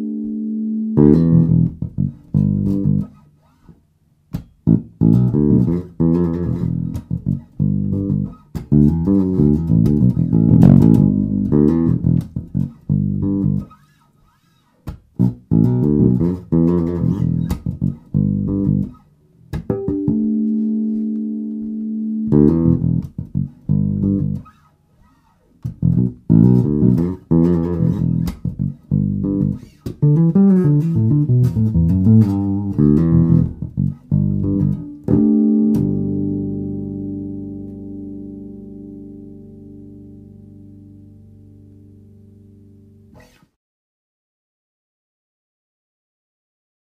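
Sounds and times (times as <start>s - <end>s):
electric bass played fingerstyle: 0.0s - 43.6s.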